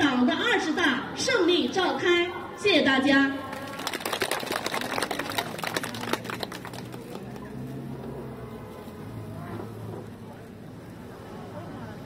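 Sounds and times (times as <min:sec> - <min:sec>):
audience applauding: 0:03.5 - 0:07.6.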